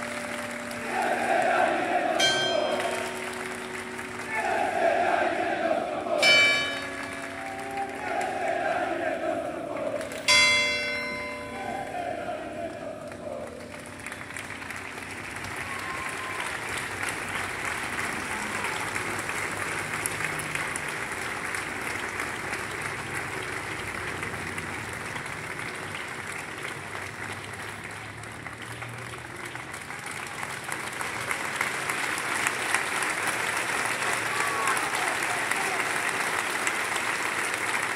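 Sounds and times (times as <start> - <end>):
crowd applauding: 0.0 - 37.9
bell strike ringing: 2.2 - 5.5, 6.2 - 8.0, 10.3 - 12.4.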